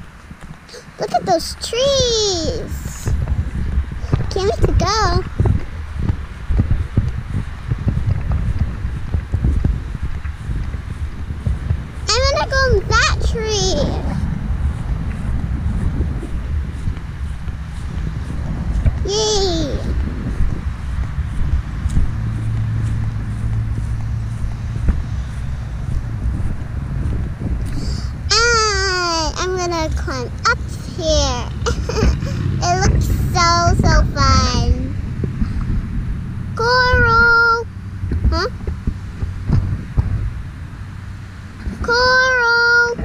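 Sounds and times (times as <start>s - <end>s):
low hum: 0.0s - 43.0s
wind rumble on microphone: 0.0s - 43.0s.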